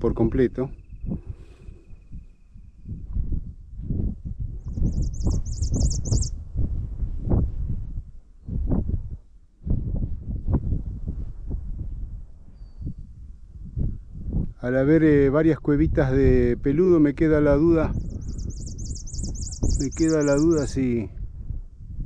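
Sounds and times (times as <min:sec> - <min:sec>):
wind buffeting microphone: 0:00.0 - 0:22.0
songbird trill: 0:04.6 - 0:06.4, 0:12.6 - 0:12.9, 0:17.9 - 0:20.9.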